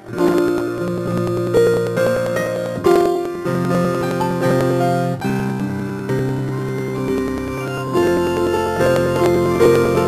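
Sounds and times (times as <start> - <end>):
keyboard playing slow held chords: 0.0 - 10.0.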